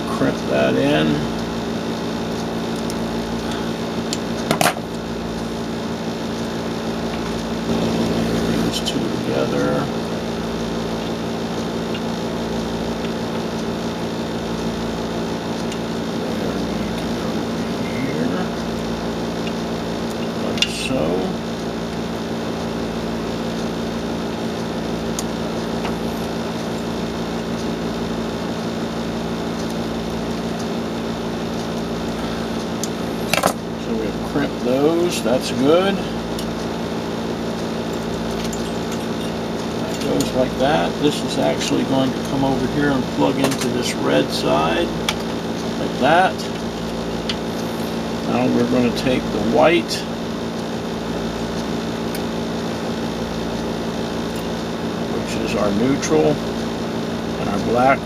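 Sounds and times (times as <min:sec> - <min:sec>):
machine hum: 0:00.0 - 0:58.0.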